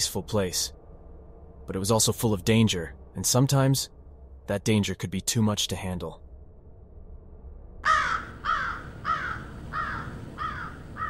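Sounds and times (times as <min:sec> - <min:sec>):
crow cawing: 0:07.8 - 0:11.0.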